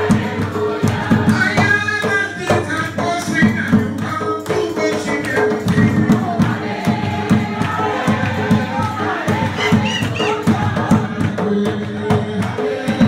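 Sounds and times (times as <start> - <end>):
congregation singing a hymn: 0.0 - 2.2, 5.6 - 13.0
rhythmic hand-clapping: 0.0 - 13.0
man singing into a microphone: 1.3 - 6.5, 9.6 - 13.0.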